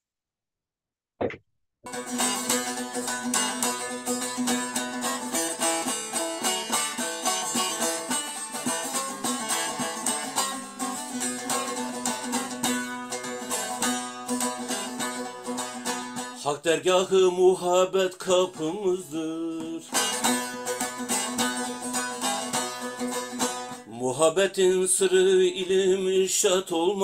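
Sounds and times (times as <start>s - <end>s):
long-necked lute strummed solo: 1.9s - 23.9s, 24.9s - 27.0s.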